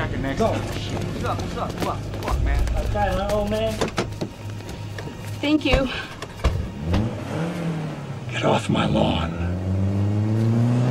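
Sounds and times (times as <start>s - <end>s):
vehicle engine revving: 6.6s - 8.4s, 9.4s - 10.9s.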